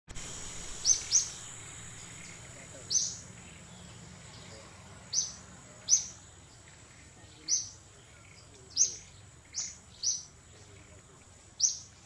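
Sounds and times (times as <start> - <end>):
steady high-pitched whine: 0.1 - 12.0
sharp bird chirps: 0.6 - 6.2, 7.4 - 10.7, 11.6 - 12.0.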